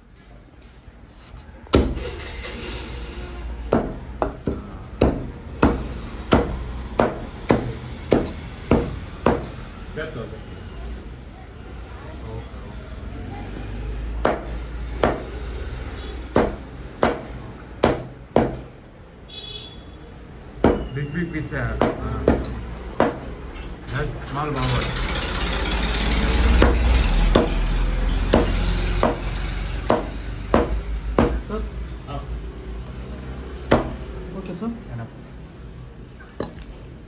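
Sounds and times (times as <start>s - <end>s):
cleaver chopping on wooden block: 3.7s - 9.6s, 14.2s - 15.3s, 16.3s - 18.7s, 21.8s - 23.3s, 26.6s - 27.6s, 28.3s - 31.4s, 33.7s - 34.0s.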